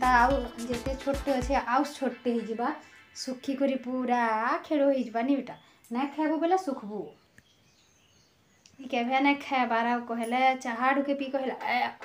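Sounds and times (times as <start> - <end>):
woman speaking: 0.0 - 7.2, 8.7 - 12.0.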